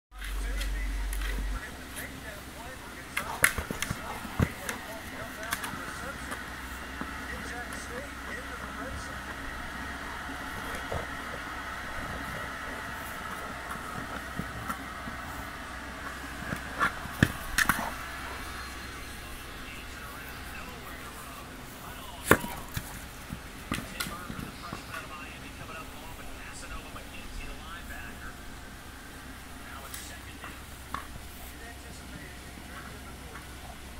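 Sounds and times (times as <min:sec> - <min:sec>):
outdoor background noise: 0:00.1 - 0:33.9.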